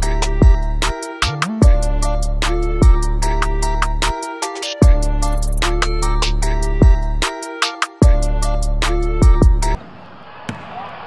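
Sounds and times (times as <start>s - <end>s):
backing music with deep bass: 0.0s - 9.8s.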